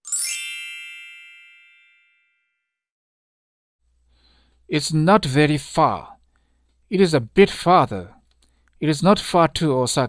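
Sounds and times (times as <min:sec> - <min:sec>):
sparkly chime ding: 0:00.0 - 0:02.6.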